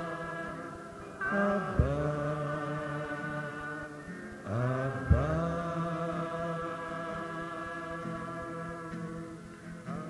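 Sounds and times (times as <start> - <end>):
congregation chanting: 0.0 - 10.0.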